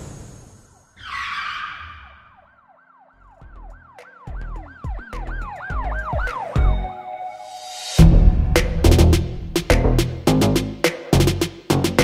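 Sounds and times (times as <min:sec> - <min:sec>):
swooping siren-like tone: 0:00.7 - 0:08.0
deep bass hits: 0:08.0 - 0:11.3.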